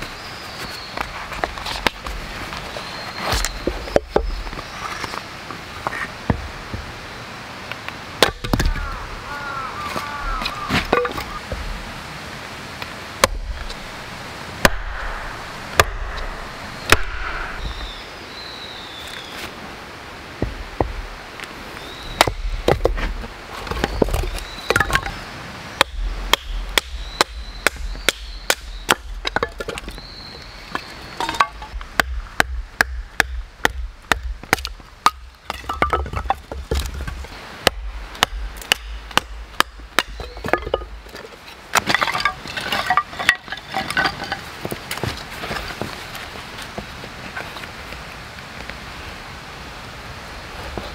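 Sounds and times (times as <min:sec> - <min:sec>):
hatchet chopping firewood: 0:08.2 - 0:08.9, 0:13.2 - 0:13.8, 0:14.6 - 0:17.7, 0:22.2 - 0:25.2, 0:25.8 - 0:46.8.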